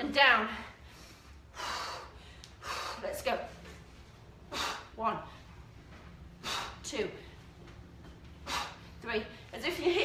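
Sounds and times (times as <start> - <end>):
woman breathing hard: 0.5 - 3.1, 4.4 - 5.6, 6.4 - 7.5, 8.4 - 9.5.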